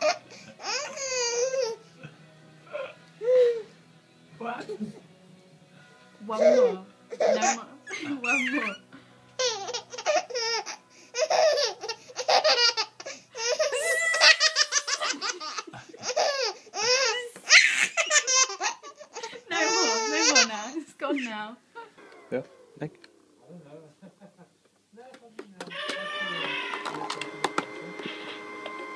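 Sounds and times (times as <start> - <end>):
baby laughing: 0.0 - 1.8, 6.4 - 8.8, 9.4 - 21.3.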